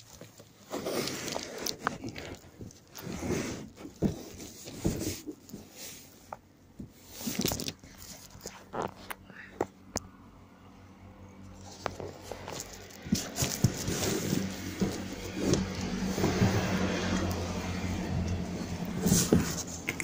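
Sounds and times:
cardboard scraping and rustling: 0.0s - 9.1s, 11.5s - 20.0s.

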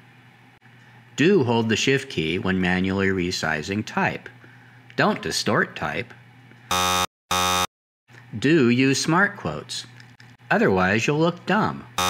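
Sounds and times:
wrong answer buzzer: 6.7s - 7.7s.

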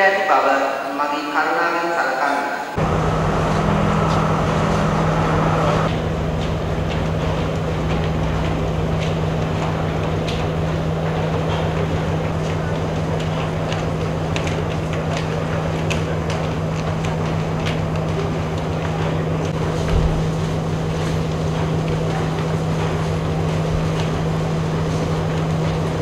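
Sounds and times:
crowd murmuring: 2.1s - 6.0s, 6.7s - 26.0s
idling diesel train engine: 2.7s - 26.0s.

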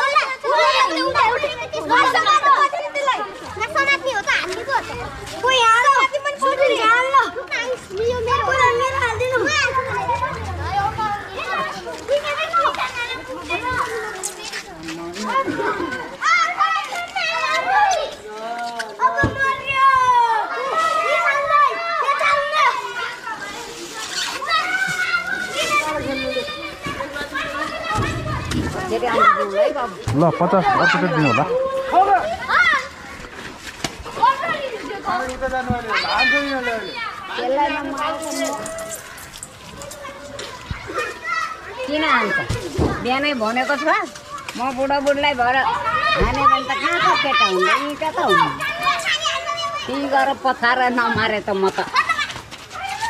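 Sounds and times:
children shouting: 0.0s - 44.7s, 45.3s - 50.5s, 51.7s - 53.0s.

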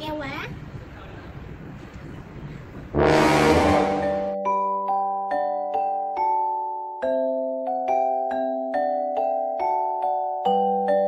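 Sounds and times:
loud brassy horn blast: 3.0s - 4.4s.

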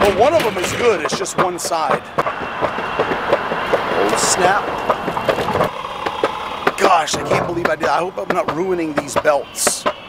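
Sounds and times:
electric skateboard rolling on concrete: 0.0s - 10.0s.

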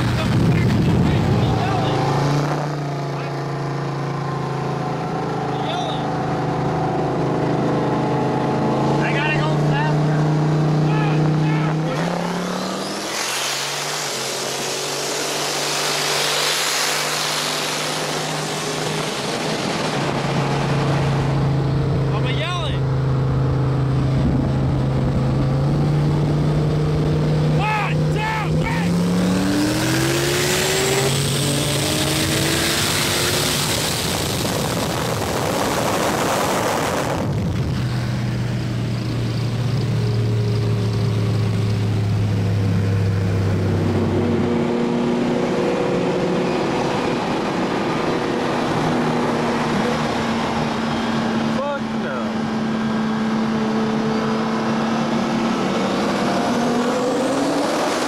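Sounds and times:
sports car engines accelerating: 0.0s - 58.0s
wind and tyre rush: 0.0s - 58.0s.

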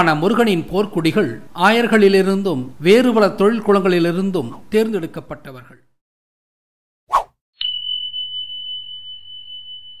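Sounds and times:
short swish: 7.1s - 7.4s.

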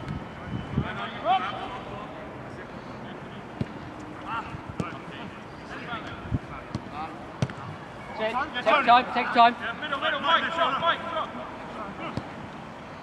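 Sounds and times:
ball kick thuds: 4.8s - 5.0s, 6.7s - 7.7s.

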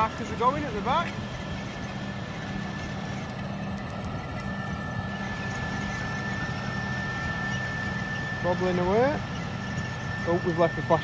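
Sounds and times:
steady high whine: 0.0s - 11.0s
tines working soil: 0.0s - 11.0s.

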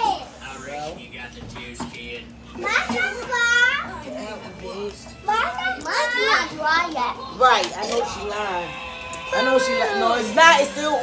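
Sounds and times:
children playing and calling out: 2.6s - 4.2s, 5.2s - 8.3s, 8.9s - 10.5s.

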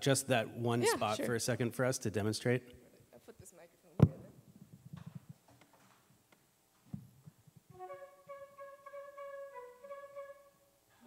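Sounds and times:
solo flute playing: 7.7s - 10.8s.

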